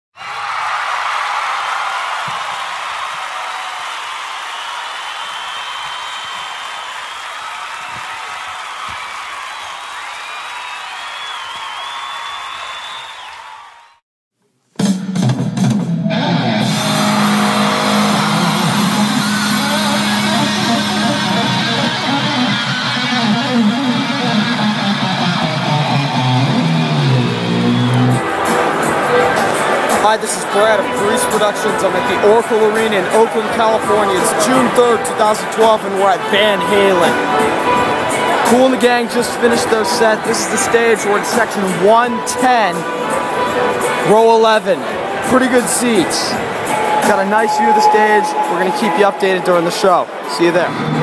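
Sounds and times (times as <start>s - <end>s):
crowd cheering: 0.2s - 14.0s, 16.4s - 51.0s
whistles and whoops: 4.6s - 8.1s, 9.6s - 14.0s
rock music with electric guitar: 15.4s - 30.0s, 41.7s - 44.1s.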